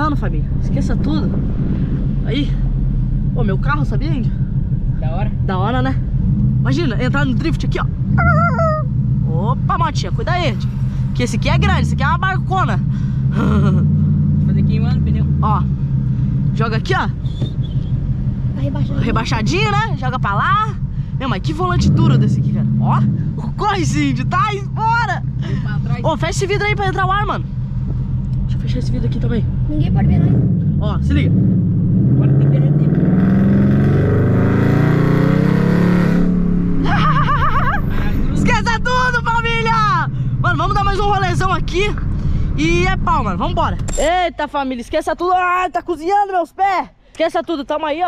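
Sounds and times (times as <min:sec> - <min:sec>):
car engine running at low revs: 0:00.0 - 0:44.1.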